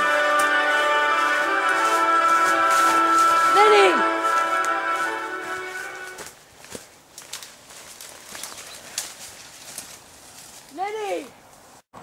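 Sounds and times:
leaves rustling: 0.0 - 11.9
person shouting: 3.4 - 4.2
twigs snapping: 6.0 - 10.8.

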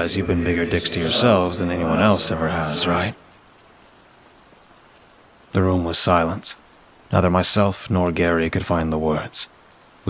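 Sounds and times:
rain hiss: 0.0 - 10.0
raindrop ticks: 0.1 - 10.0.

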